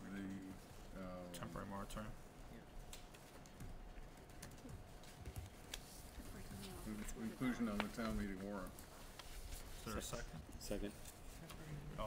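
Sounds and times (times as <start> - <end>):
faint steady hum: 0.0 - 12.0
laptop keyboard typing clicks: 2.9 - 5.8.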